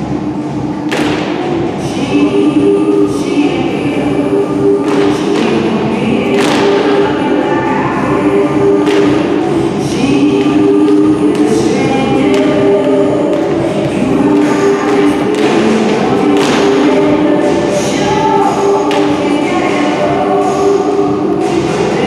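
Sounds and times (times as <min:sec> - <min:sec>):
choir singing long held notes: 0:01.5 - 0:22.0.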